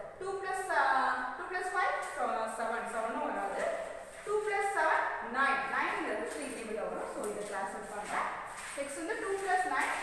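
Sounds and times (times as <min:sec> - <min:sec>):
person speaking: 0:00.1 - 0:10.0.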